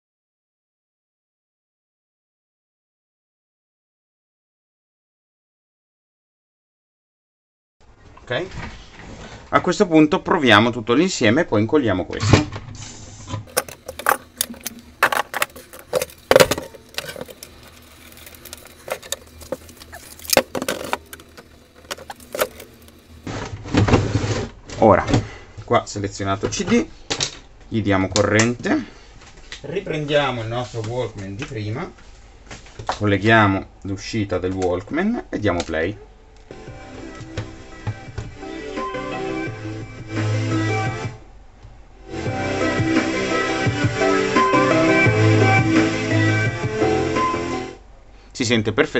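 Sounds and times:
plastic cabinet clicking and rattling: 13.5s - 23.1s.

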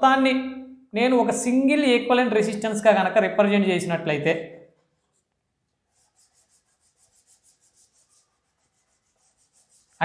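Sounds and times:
rapid rubbing on a whiteboard: 4.7s - 10.0s.

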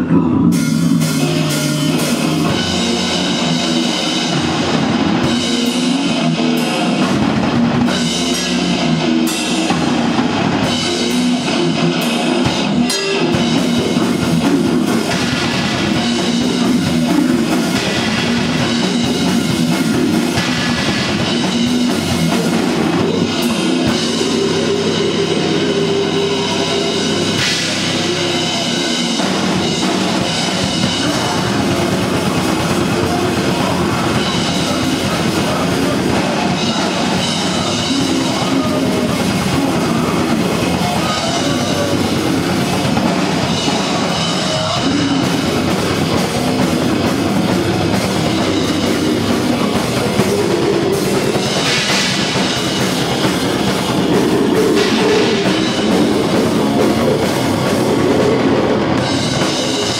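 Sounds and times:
bass guitar: 0.0s - 59.9s
distorted electric guitar: 0.0s - 59.9s
drum kit: 0.0s - 59.9s.

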